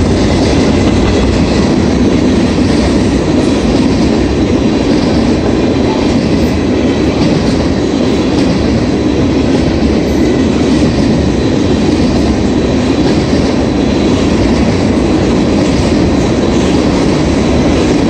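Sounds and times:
freight train wheels rumbling: 0.0s - 18.0s.

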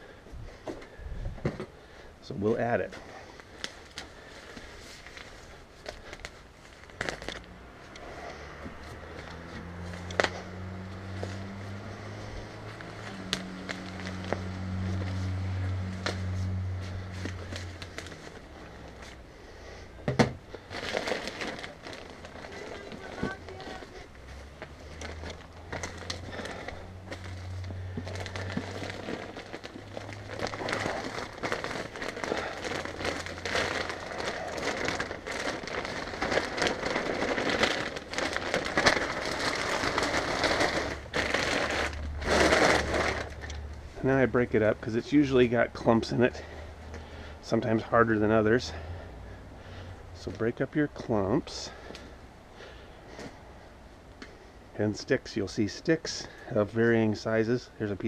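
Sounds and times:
plastic bag crinkling: 2.3s - 19.5s, 20.4s - 48.8s
potting mix pouring out: 24.9s - 46.1s.

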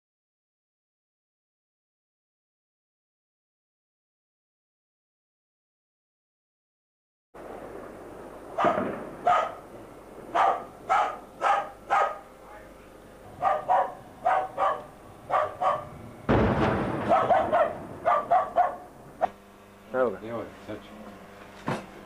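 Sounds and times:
heavy noisy burst: 7.4s - 20.9s
dog barking: 8.6s - 9.6s, 10.3s - 12.3s, 13.4s - 16.0s, 17.0s - 18.9s.

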